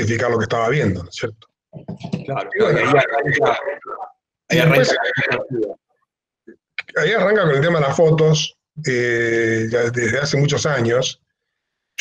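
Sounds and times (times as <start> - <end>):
man speaking over video call: 0.0 - 1.5, 2.1 - 5.9, 6.5 - 11.3.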